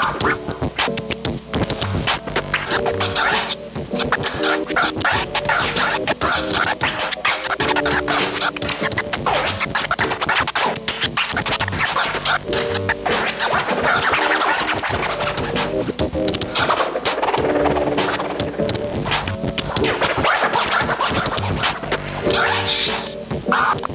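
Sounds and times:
backing beat with melodic phrase: 0:00.0 - 0:23.9
turntable scratching: 0:00.0 - 0:23.9.

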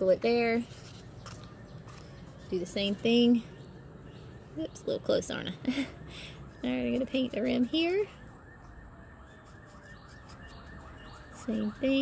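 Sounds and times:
distant siren: 0:00.1 - 0:12.0.

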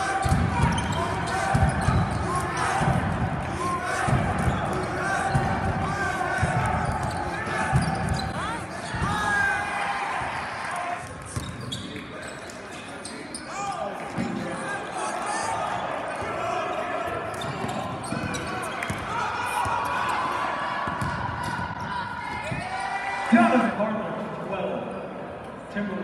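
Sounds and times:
sneaker squeaks: 0:00.2 - 0:02.9, 0:06.4 - 0:09.2, 0:11.3 - 0:14.4, 0:16.0 - 0:20.3.

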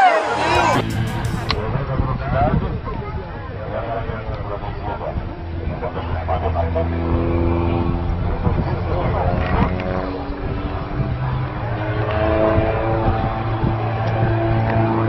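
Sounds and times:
small airplane engine droning: 0:03.1 - 0:15.0.

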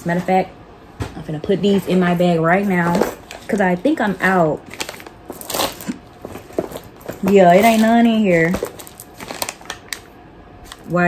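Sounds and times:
light plastic rustling: 0:02.4 - 0:11.0.

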